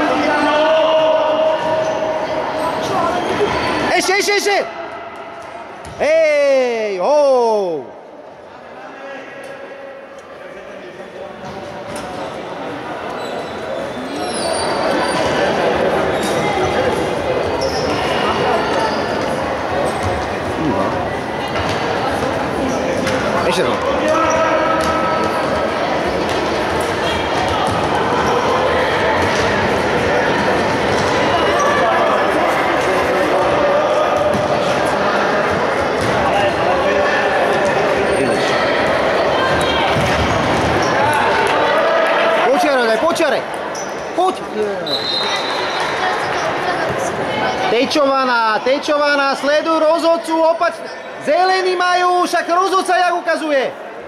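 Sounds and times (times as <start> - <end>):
high steady whistle: 44.8 - 45.8.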